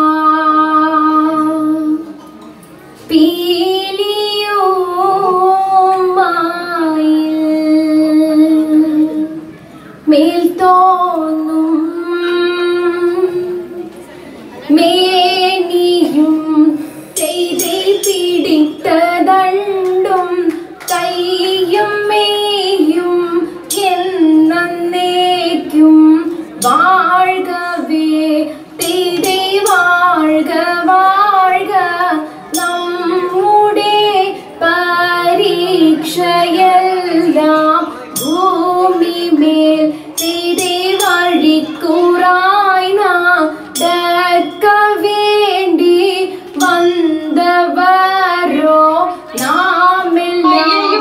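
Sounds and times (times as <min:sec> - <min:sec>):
woman singing: 0:00.0 - 0:02.1, 0:03.1 - 0:09.4, 0:10.1 - 0:13.9, 0:14.7 - 0:51.0
woman singing long held notes: 0:45.5 - 0:51.0.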